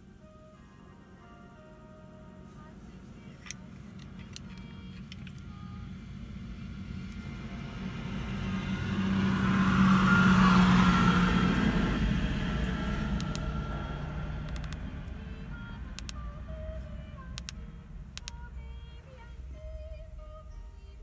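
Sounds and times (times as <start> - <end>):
vehicle passing close by: 5.8 - 18.1.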